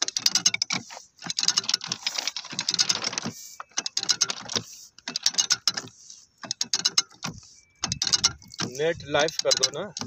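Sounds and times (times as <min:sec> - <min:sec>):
ratchet drill clicking: 0:00.0 - 0:10.0.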